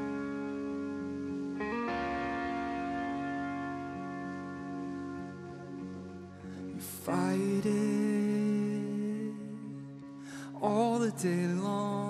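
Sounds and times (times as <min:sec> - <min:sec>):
bass guitar: 0:00.0 - 0:11.6
electric guitar chords: 0:00.0 - 0:12.0.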